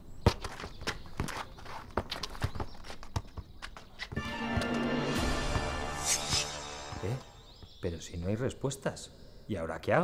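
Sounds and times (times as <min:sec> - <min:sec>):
footsteps on paving stones: 0:00.0 - 0:04.8
football kicked and bounced on paving: 0:00.2 - 0:04.2.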